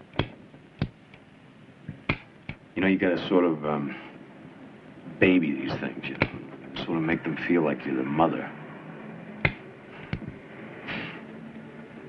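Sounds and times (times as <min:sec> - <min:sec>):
man speaking: 0:02.8 - 0:04.2, 0:05.2 - 0:08.6.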